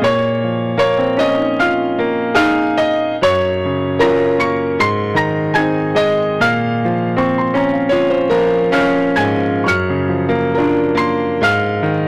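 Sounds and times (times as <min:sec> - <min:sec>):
electronic keyboard piano melody: 0:00.0 - 0:12.0.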